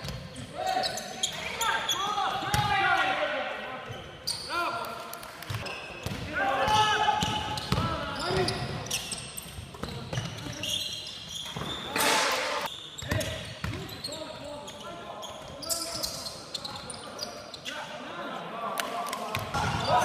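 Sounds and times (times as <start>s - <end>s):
basketball bouncing on court: 5.5s - 8.8s.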